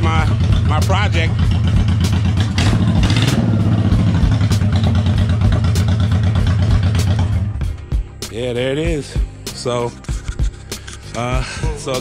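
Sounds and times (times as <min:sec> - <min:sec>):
motorcycle engine running: 0:00.0 - 0:08.1.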